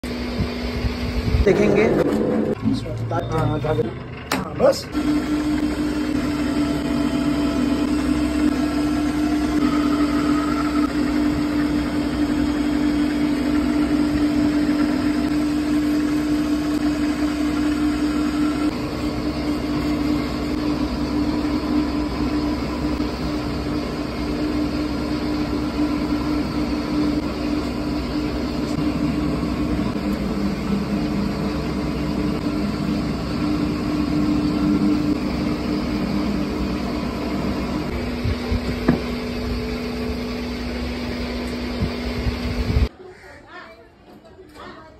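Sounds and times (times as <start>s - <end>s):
potter's wheel motor hum: 0.0s - 42.9s.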